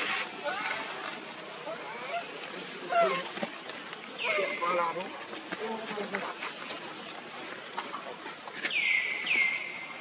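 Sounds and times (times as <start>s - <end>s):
outdoor ambience: 0.0s - 10.0s.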